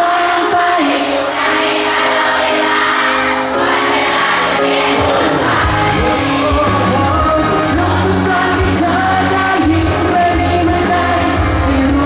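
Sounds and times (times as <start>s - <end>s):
drums and bass: 5.6s - 12.0s
man singing: 5.6s - 12.0s.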